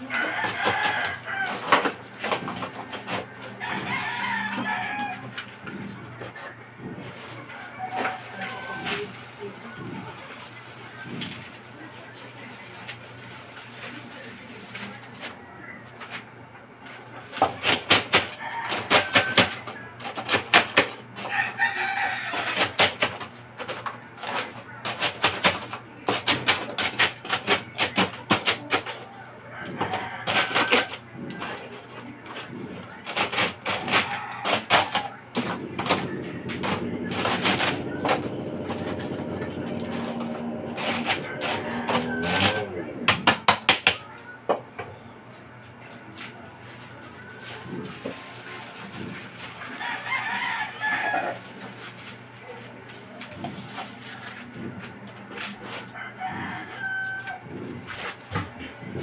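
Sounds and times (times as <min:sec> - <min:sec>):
rooster crowing: 0:00.0 - 0:02.0, 0:03.4 - 0:05.5, 0:07.4 - 0:09.2, 0:18.2 - 0:19.9, 0:21.2 - 0:22.8, 0:29.1 - 0:31.1, 0:33.8 - 0:35.2, 0:36.1 - 0:43.4, 0:49.6 - 0:51.7, 0:55.6 - 0:58.1.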